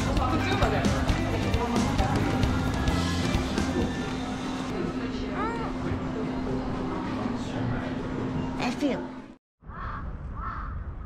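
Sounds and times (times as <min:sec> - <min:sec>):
low hum of machines: 0:02.2 - 0:09.4.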